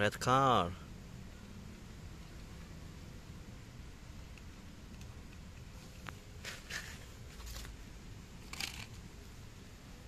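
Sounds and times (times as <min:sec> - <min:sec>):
toy car clattering in basket: 0:08.5 - 0:09.0.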